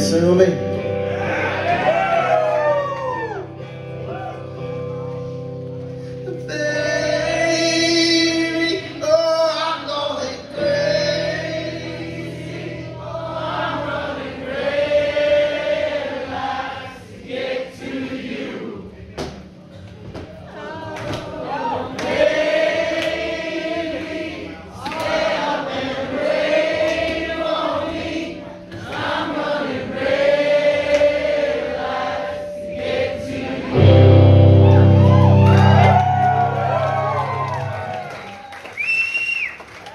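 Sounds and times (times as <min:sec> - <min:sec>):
crowd singing along: 0:06.3 - 0:19.2, 0:20.4 - 0:36.5
held low chord: 0:31.1 - 0:37.8.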